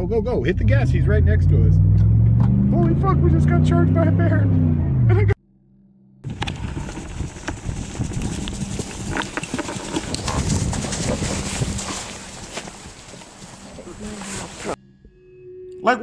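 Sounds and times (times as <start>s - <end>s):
sharp clicks and thuds: 1.9s - 3.0s, 6.3s - 13.6s
low voices: 13.6s - 14.8s.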